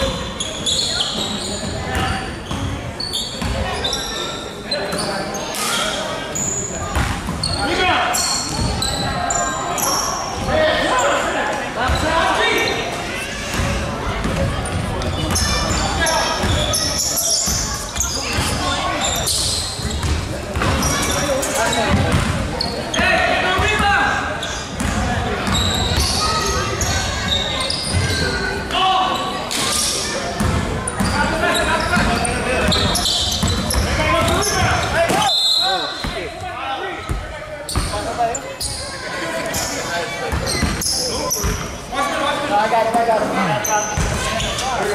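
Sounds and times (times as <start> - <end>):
players' voices echoing: 0.0 - 44.9.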